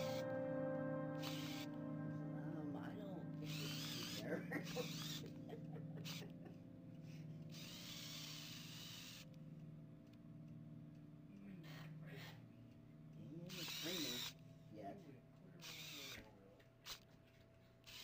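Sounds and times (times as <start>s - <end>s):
low steady hum: 0.0s - 17.8s
small electric motors whirring: 1.2s - 1.7s, 3.5s - 5.3s, 6.0s - 6.3s, 7.5s - 9.3s, 13.5s - 14.4s, 15.6s - 17.1s.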